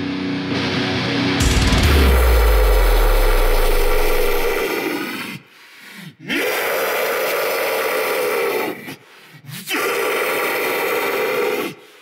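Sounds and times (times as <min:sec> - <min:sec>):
deep bass boom: 0:01.4 - 0:04.8.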